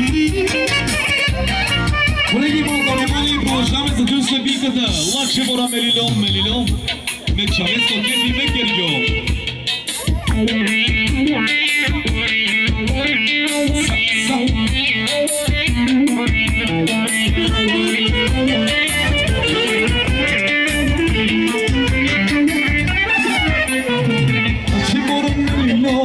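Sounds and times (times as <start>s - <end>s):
bass line: 0.0s - 26.0s
driving drum beat: 0.0s - 26.0s
clarinet melody: 16.9s - 25.2s.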